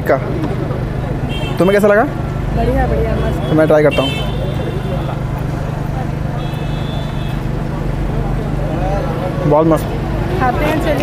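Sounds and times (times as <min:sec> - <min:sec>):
traffic noise: 0:00.0 - 0:11.0.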